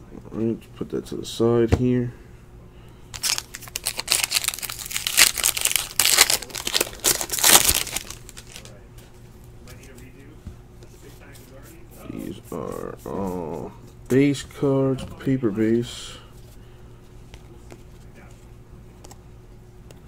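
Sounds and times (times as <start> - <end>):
foil wrapper crinkling: 3.2 - 8.8.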